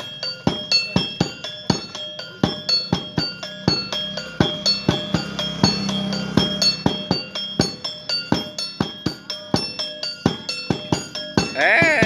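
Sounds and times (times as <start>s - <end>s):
drum beats: 0.0s - 12.0s
hand-held metal gong struck: 0.0s - 12.0s.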